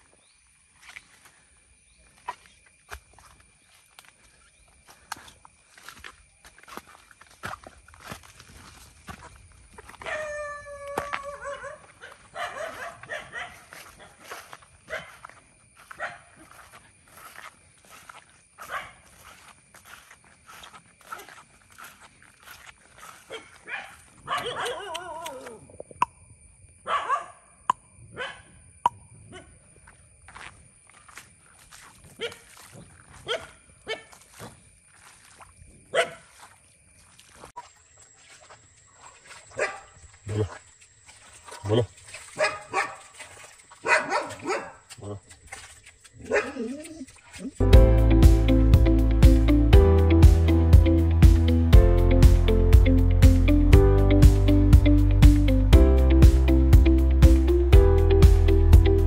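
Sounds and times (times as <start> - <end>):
dog howling: 10.0 - 11.9
dog barking: 11.3 - 14.2, 14.9 - 15.2, 16.0 - 16.4, 18.6 - 19.1, 23.3 - 25.0, 26.8 - 27.5, 28.1 - 28.5, 32.2 - 32.4, 33.2 - 34.2, 35.9 - 36.3, 39.5 - 40.5, 41.6 - 43.2, 43.8 - 44.9, 46.3 - 46.7.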